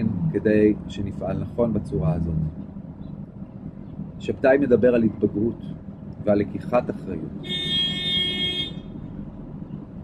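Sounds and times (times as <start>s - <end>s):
steady horn-like tone: 7.4s - 8.9s.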